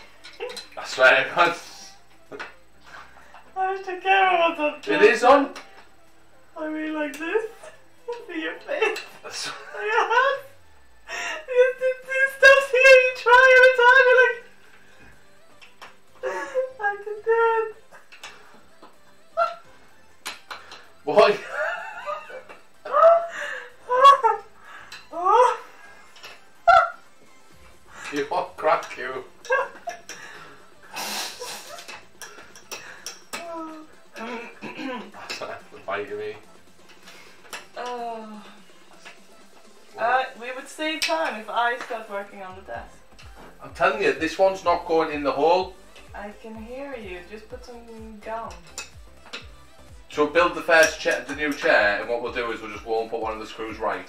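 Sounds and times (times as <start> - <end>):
man and woman laughing: 8.8 - 12.0, 16.2 - 18.1, 21.3 - 27.1, 29.3 - 32.1, 34.2 - 35.3.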